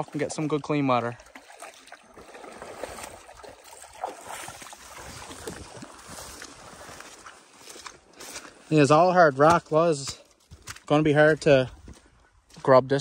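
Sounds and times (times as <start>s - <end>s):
pond water splashing: 0.0s - 12.6s.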